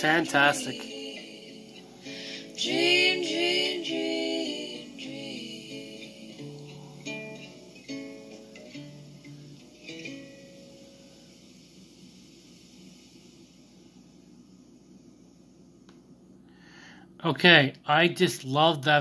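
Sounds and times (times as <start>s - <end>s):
woman singing: 0.0s - 7.1s
acoustic guitar: 0.0s - 14.2s.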